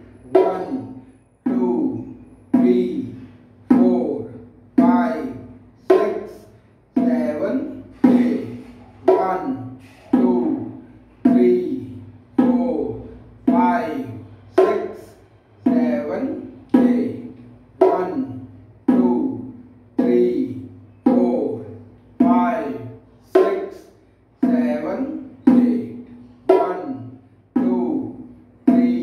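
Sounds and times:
man sounding out syllables: 0.2s - 29.0s.

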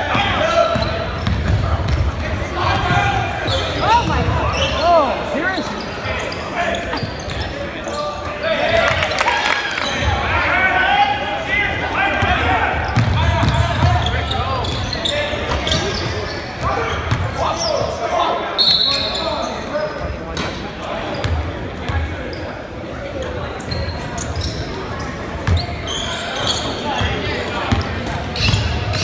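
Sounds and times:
voices in a hall: 0.0s - 29.0s.

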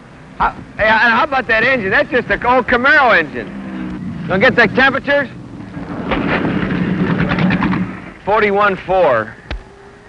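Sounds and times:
race car engine passing by: 1.7s - 8.3s.

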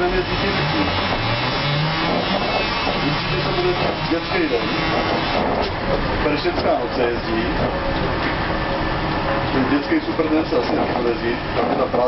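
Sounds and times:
trolleybus running noise: 0.0s - 1.4s, 2.0s - 12.0s.

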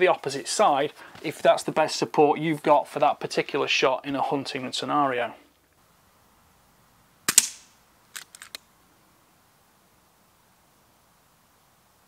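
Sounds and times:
air rifle shot: 7.3s - 7.7s
cocking lever clicks: 7.3s - 8.6s.

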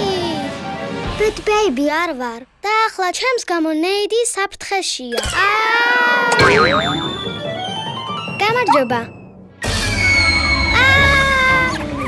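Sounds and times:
cartoon baby screaming: 5.2s - 6.4s, 9.6s - 12.0s.

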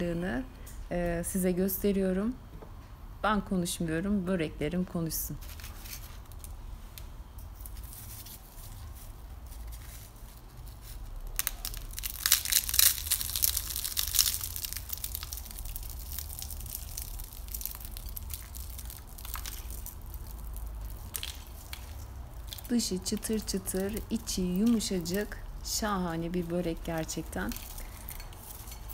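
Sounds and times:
pastry crackling and crunching: 5.2s - 28.9s.

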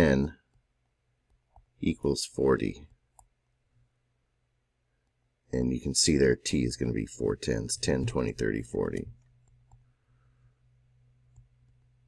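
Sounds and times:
steady low hum: 1.8s - 12.0s.

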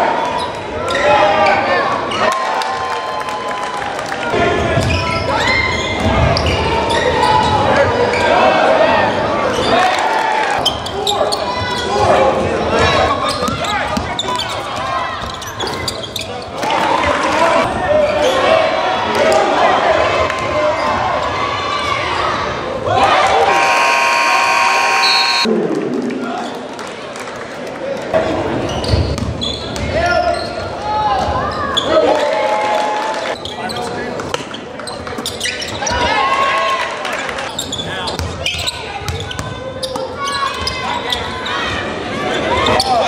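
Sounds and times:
voices of players and spectators: 0.0s - 43.0s
scoreboard horn blast: 23.4s - 25.5s.

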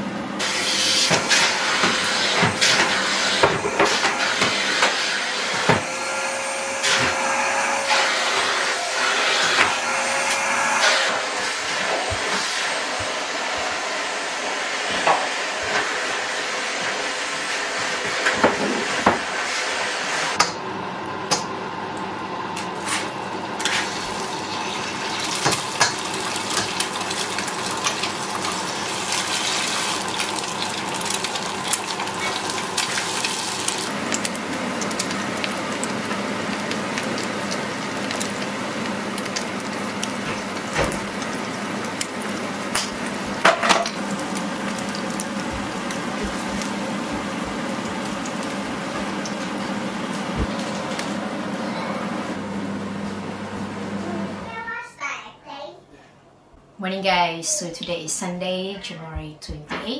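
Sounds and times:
eggs sizzling in frying pan: 23.5s - 51.7s
utensils tapping on pan: 25.4s - 26.9s.

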